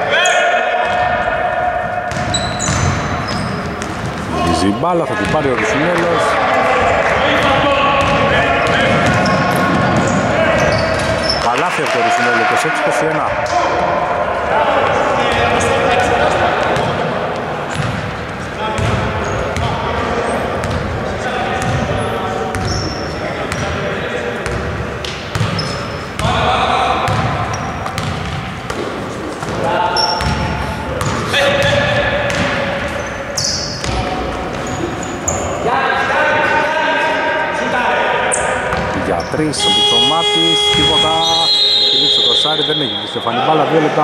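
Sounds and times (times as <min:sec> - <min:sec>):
voices: 0:00.0 - 0:44.0
basketball bouncing on wooden floor: 0:27.1 - 0:29.6, 0:30.2 - 0:32.6.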